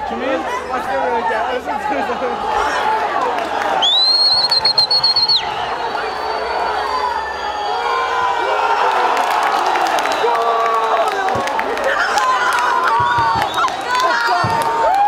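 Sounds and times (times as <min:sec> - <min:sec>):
stadium crowd shouting and cheering: 0:00.0 - 0:15.0
people clapping: 0:03.0 - 0:05.4, 0:08.6 - 0:15.0.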